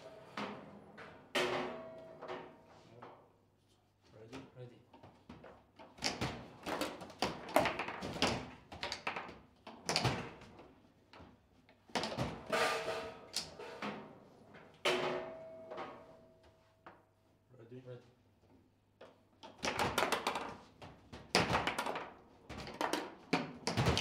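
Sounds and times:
table football knocks and clacks: 5.2 - 10.6, 19.0 - 24.0.

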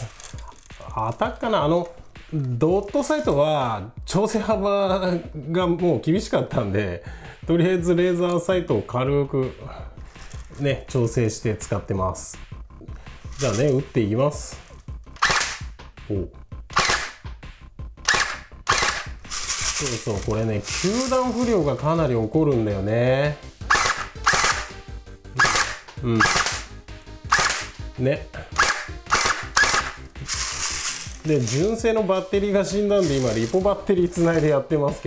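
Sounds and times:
airsoft gun firing: 15.2 - 15.7, 16.7 - 17.2, 18.1 - 19.2, 23.7 - 24.7, 25.4 - 26.7, 27.3 - 27.8, 28.6 - 30.0.

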